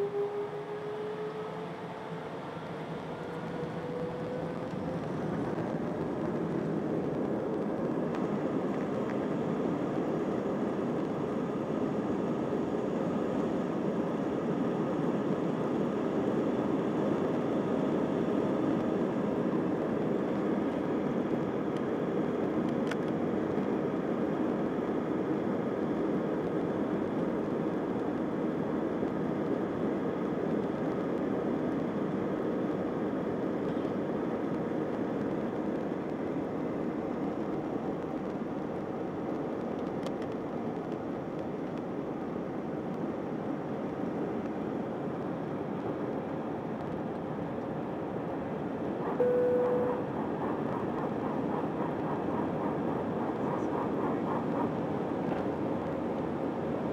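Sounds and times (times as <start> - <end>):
airplane cabin rumble and hiss: 0.0 - 56.9.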